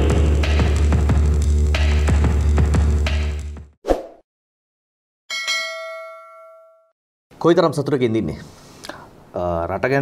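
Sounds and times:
bright notification bell ding: 5.3s - 6.9s.

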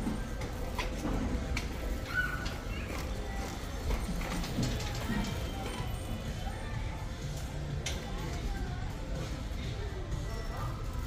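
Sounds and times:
shopping cart rattling: 0.0s - 6.6s.

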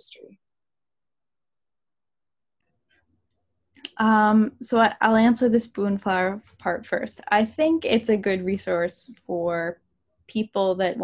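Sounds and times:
woman speaking: 3.8s - 11.0s.

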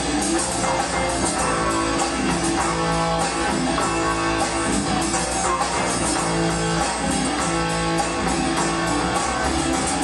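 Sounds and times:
drum kit with cymbal strokes: 0.0s - 10.0s
electric guitar: 0.0s - 10.0s.

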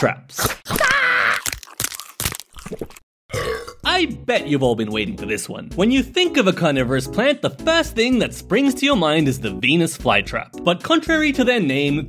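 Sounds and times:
cartoon crunching and chomping: 0.3s - 3.8s.

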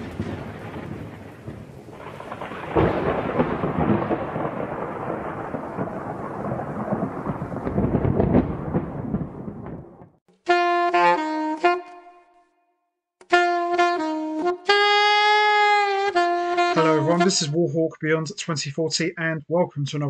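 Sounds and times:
rain: 0.0s - 9.9s
thunder rumbling: 0.0s - 10.2s.

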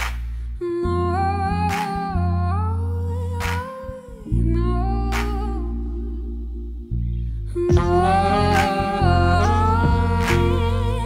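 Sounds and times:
deep bass notes: 0.0s - 11.0s
gliding melody line: 7.7s - 11.0s.

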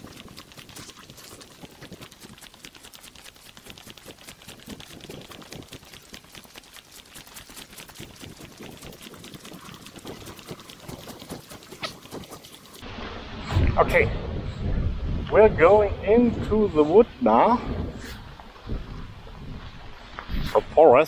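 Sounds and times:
footsteps on dirt track: 0.0s - 12.9s, 17.8s - 20.7s.

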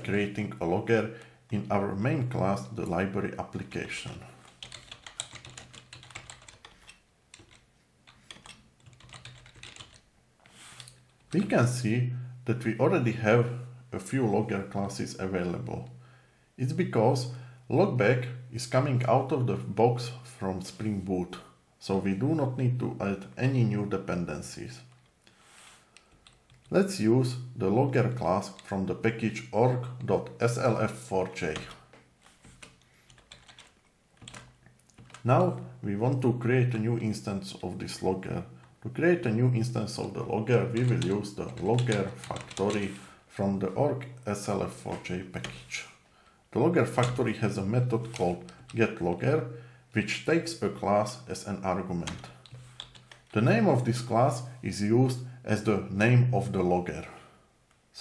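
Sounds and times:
faint keyboard typing: 2.8s - 11.4s, 25.9s - 26.8s, 28.1s - 35.8s, 40.0s - 43.2s, 44.0s - 45.8s, 46.8s - 49.3s, 52.0s - 53.6s
computer keyboard typing: 4.4s - 10.1s, 26.1s - 26.7s, 32.4s - 35.3s, 40.6s - 43.0s, 52.1s - 53.4s.

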